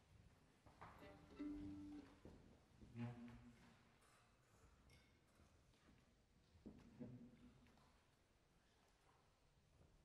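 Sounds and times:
plucked violin string: 0:01.0 - 0:02.2.

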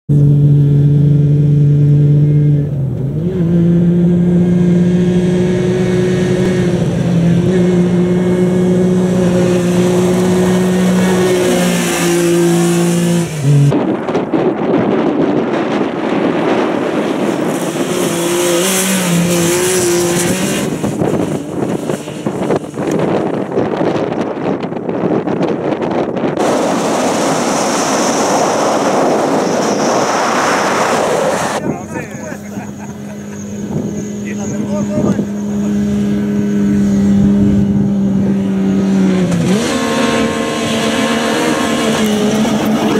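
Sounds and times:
engine at high revs: 0:00.1 - 0:13.8, 0:15.3 - 0:25.1, 0:26.2 - 0:42.9
wind rush on microphone: 0:04.1 - 0:42.9
tyres on gravel: 0:08.9 - 0:13.7, 0:26.4 - 0:33.5.

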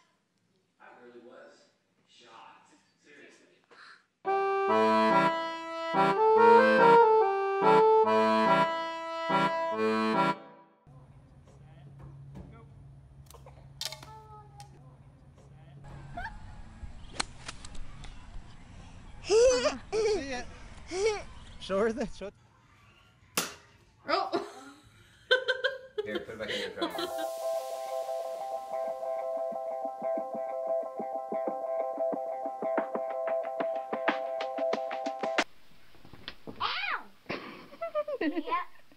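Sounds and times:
background music with steady beat: 0:26.9 - 0:35.5.

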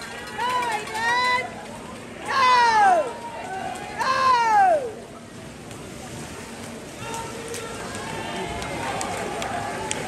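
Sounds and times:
murmur of spectators: 0:00.0 - 0:10.0
water splashing from swimmers: 0:00.0 - 0:10.0.

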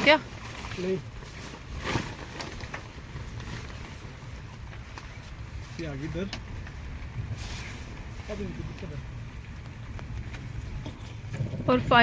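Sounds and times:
steady low rumble: 0:00.0 - 0:12.0
tent fabric rustling: 0:00.0 - 0:12.0.

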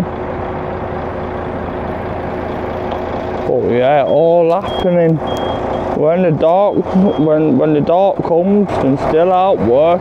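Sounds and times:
lorry engine idling: 0:00.0 - 0:10.0.

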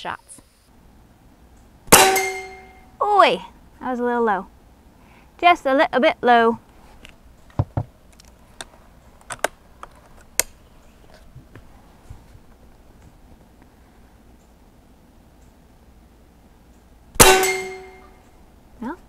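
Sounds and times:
air rifle firing: 0:01.9 - 0:02.8, 0:17.2 - 0:18.1
steel gong ringing: 0:01.9 - 0:02.9, 0:17.2 - 0:18.2.

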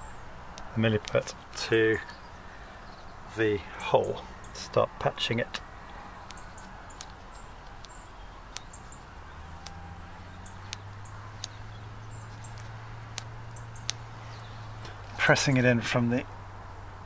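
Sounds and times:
faint birds chirping: 0:00.0 - 0:17.0
small sharp clicks: 0:00.5 - 0:01.6, 0:05.8 - 0:15.2.

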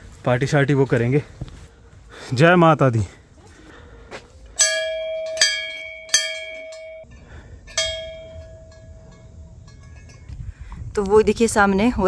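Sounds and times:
brass bell strikes: 0:04.6 - 0:07.1, 0:07.7 - 0:10.3.

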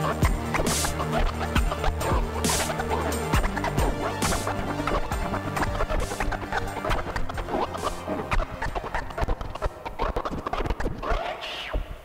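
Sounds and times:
record scratching: 0:00.0 - 0:12.0.

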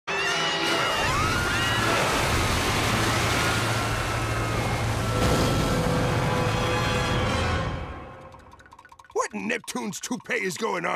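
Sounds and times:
cartoon score music: 0:06.4 - 0:10.9.

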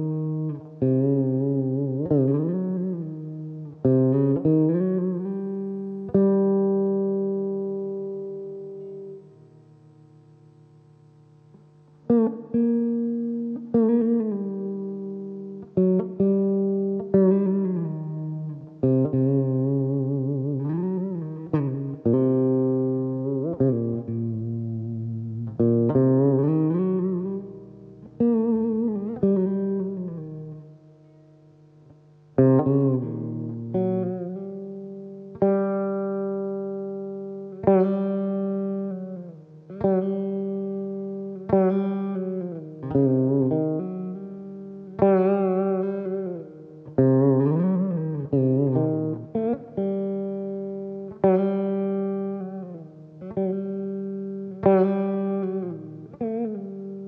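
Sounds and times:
plucked veena notes: 0:00.0 - 0:09.6, 0:10.7 - 0:57.0.

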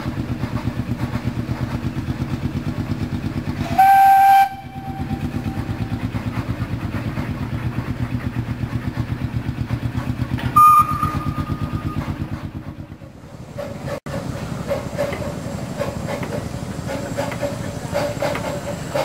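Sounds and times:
steam locomotive exhaust beats: 0:00.0 - 0:19.0
steam whistle blast: 0:03.6 - 0:05.9, 0:10.6 - 0:12.2.

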